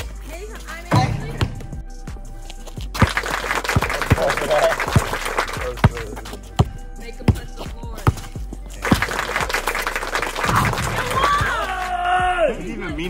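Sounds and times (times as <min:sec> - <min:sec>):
voices: 0:00.0 - 0:01.8, 0:03.8 - 0:09.3
basketball bouncing on concrete: 0:00.0 - 0:01.9, 0:02.8 - 0:09.7
background music: 0:00.0 - 0:13.0.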